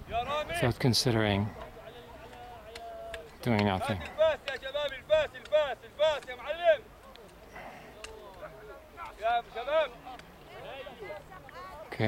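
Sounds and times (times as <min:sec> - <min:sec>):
distant crowd voices: 0:00.0 - 0:12.0.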